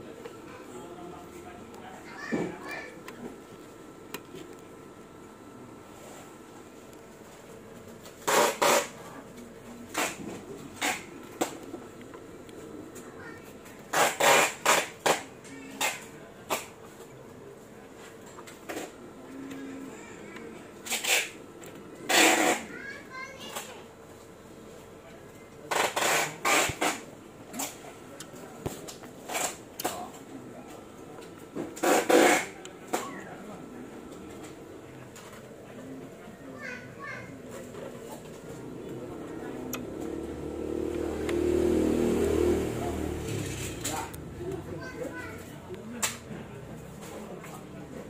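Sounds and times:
children's voices: 1.8s - 3.1s, 13.0s - 13.6s, 19.4s - 20.7s, 22.1s - 24.0s, 35.8s - 37.8s, 43.8s - 45.8s.

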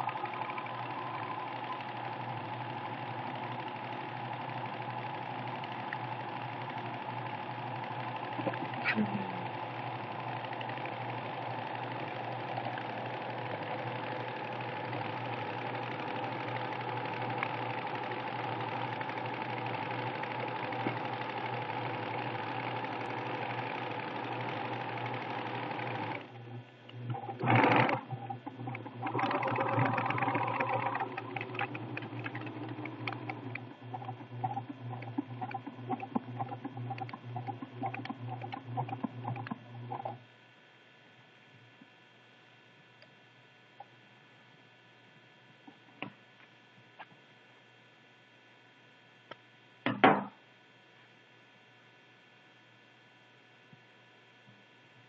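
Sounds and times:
electronic sewing machine sewing: 0.0s - 40.2s.

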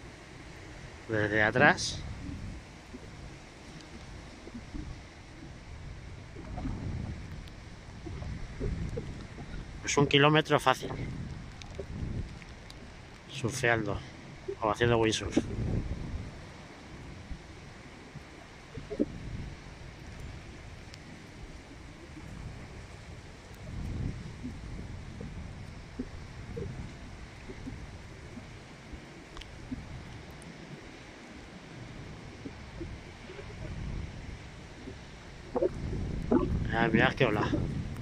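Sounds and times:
gusty wind buffeting microphone: 0.0s - 38.0s.

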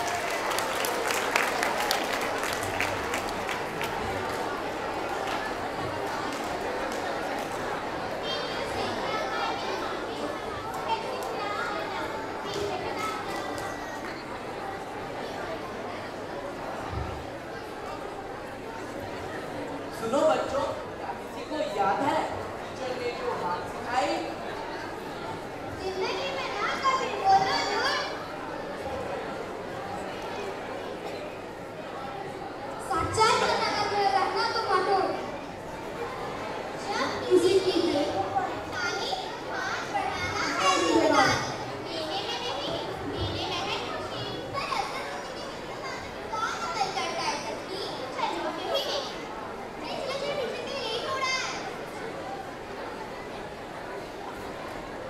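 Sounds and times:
children talking and calling out: 0.0s - 55.0s
child speaking: 25.8s - 28.2s, 32.8s - 35.3s, 36.8s - 49.2s, 49.8s - 51.7s.

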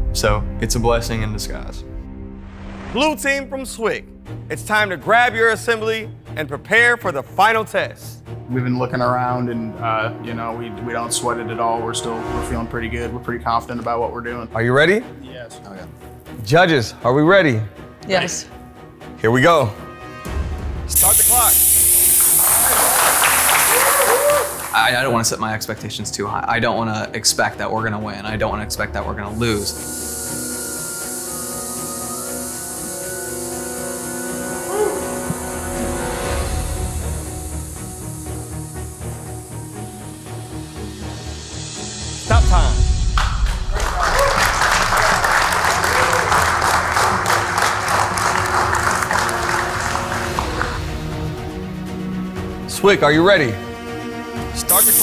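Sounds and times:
compressed air hissing: 20.9s - 25.0s, 29.3s - 42.2s, 54.7s - 55.0s
crowd applauding: 22.0s - 25.2s, 43.2s - 51.1s
people clapping: 22.1s - 25.2s, 43.1s - 51.1s.

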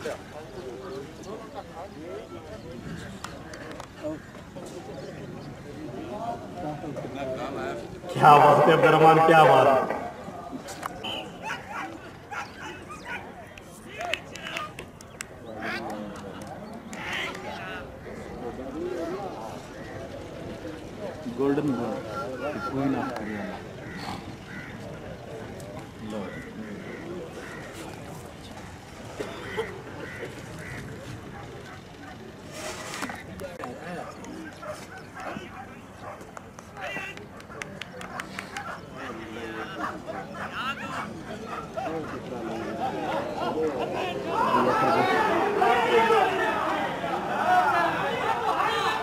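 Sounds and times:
distant voices: 0.0s - 49.0s
dogs yelping and whining: 11.4s - 13.3s.

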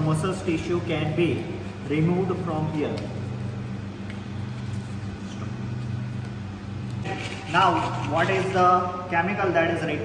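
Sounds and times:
low mechanical hum: 0.0s - 10.0s
sandpaper rasping on bone: 7.0s - 8.6s.

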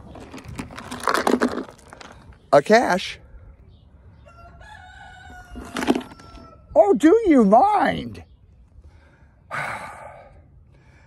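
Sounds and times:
plastic container clicks and rustles: 0.0s - 2.4s.

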